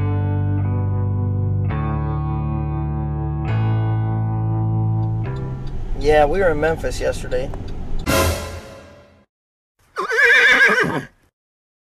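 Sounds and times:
horse whinnying: 10.0 - 11.2.

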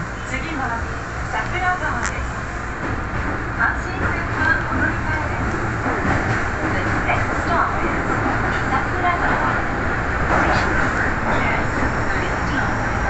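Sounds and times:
subway train rumbling: 0.0 - 13.0.

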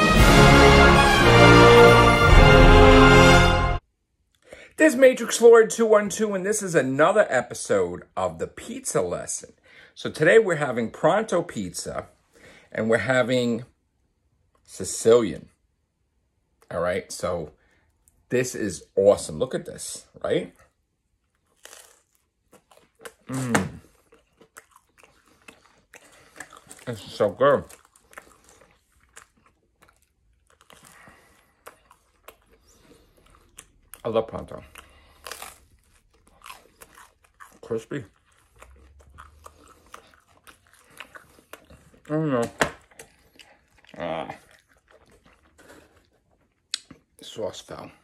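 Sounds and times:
chewing sounds: 20.6 - 47.8
pizza crust crunch: 21.4 - 47.5.

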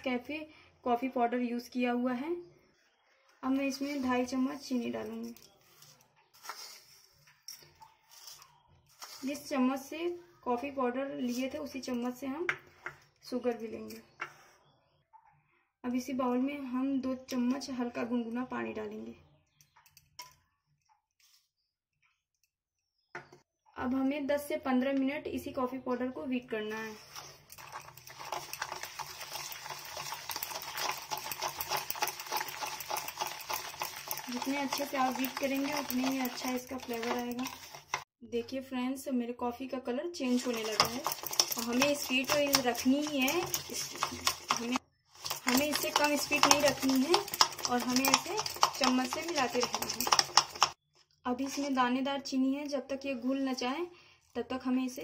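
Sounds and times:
spoon scooping sugar: 3.5 - 9.6, 26.8 - 38.1, 40.2 - 50.8.

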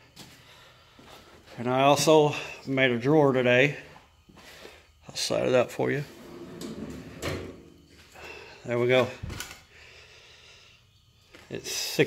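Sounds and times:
drawer rolling out on slides: 6.1 - 7.7.

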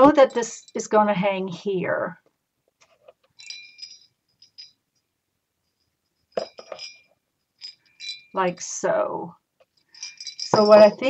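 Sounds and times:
small hard objects clinking: 6.3 - 8.4, 9.7 - 11.0.

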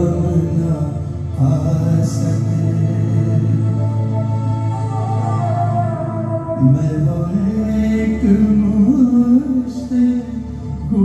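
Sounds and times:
man singing into a microphone: 0.0 - 4.7, 6.5 - 11.0.

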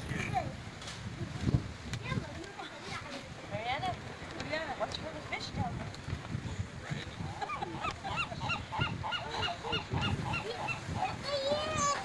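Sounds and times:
birds calling rapidly: 7.1 - 12.0.

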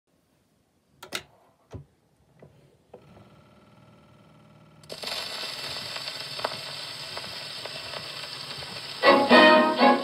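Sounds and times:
record surface hiss: 0.1 - 10.0
record crackles: 4.8 - 9.4.

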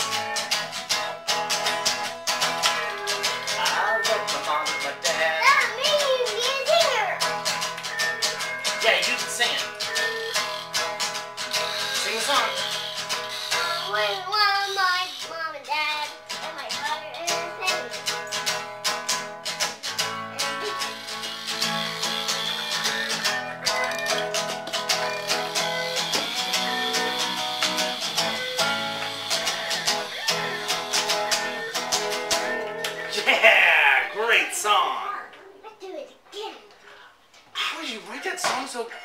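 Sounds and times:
acoustic guitar strumming: 0.0 - 35.3
child singing: 2.0 - 7.2, 13.5 - 18.1.

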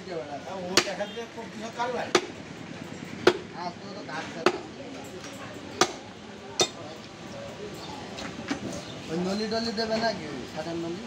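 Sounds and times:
cleaver chopping on wooden block: 0.7 - 1.0, 2.1 - 2.4, 3.2 - 3.5, 4.4 - 4.7, 5.8 - 6.0.

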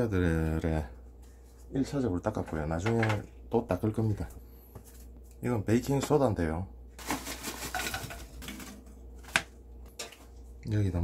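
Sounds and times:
plastic pouch crinkling: 7.0 - 8.6.

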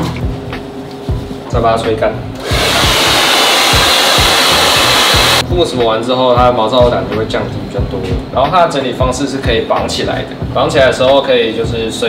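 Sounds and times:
hair dryer blowing: 2.4 - 5.4.

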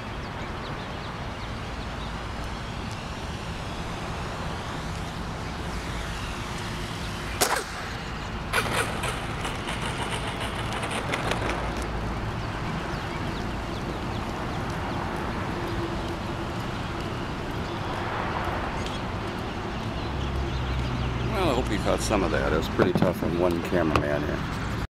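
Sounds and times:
wind rumble on microphone: 0.0 - 24.8
model plane engine droning: 1.1 - 22.6
rattling: 8.6 - 11.8.

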